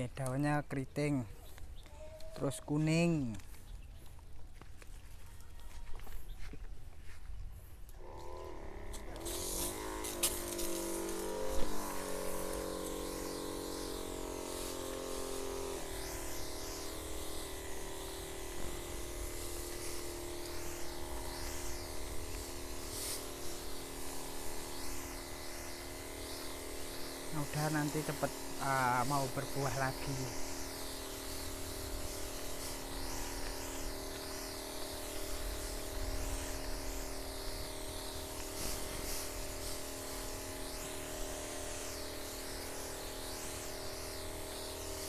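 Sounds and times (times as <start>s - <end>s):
sprayer pump motor humming: 7.8s - 45.0s
spray hissing: 8.5s - 45.0s.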